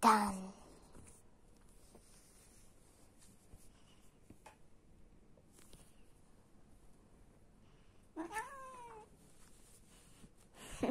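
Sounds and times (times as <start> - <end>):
cat meowing: 8.2 - 9.1.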